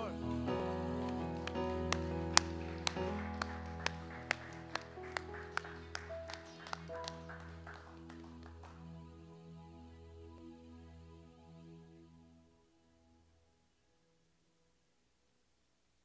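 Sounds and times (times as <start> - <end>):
keyboard sustained chords: 0.0 - 14.2
hand claps: 1.0 - 8.8.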